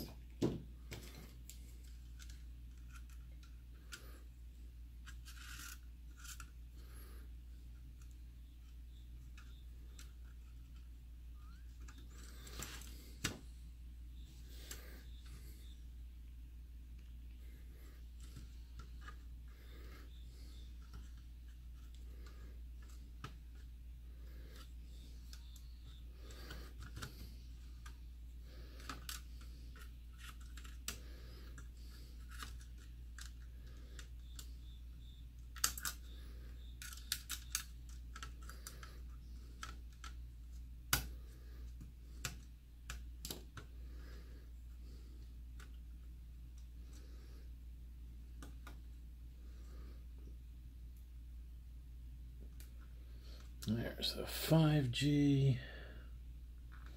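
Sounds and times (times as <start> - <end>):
steady low hum: 0.0 - 56.9
small plastic and metal clicks: 28.8 - 40.2.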